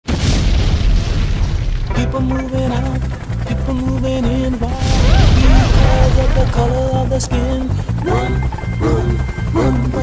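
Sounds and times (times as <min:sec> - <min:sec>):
explosion boom with deep rumble: 0:00.0 - 0:02.0, 0:04.8 - 0:06.6.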